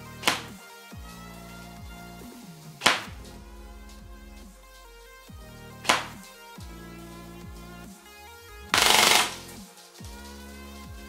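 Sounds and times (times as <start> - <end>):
electronic background music: 0.0 - 11.0
sharp crack: 0.2 - 0.5, 2.8 - 3.2, 5.9 - 6.2, 8.8 - 9.4
airsoft rifle full-auto fire: 8.8 - 9.4.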